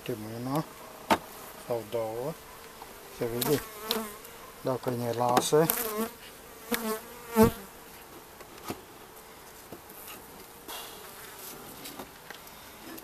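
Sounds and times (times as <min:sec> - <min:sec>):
honeybees humming: 0:00.0 - 0:11.6.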